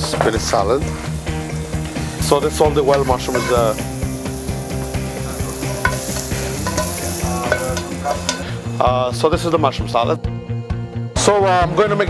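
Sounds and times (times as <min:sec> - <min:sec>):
mushrooms sizzling in frying pan: 0:00.0 - 0:09.5.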